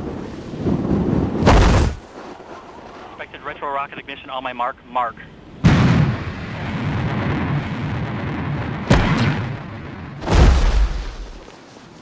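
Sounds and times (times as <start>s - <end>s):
sharp crack: 1.4s - 3.0s, 8.7s - 11.6s
heavy low boom: 5.6s - 11.4s
rocket blast roaring: 5.6s - 11.5s.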